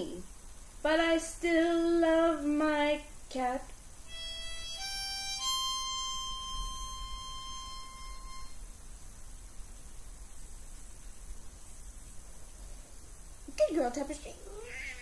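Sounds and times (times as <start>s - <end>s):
harmonica playing long high note: 4.1s - 8.6s.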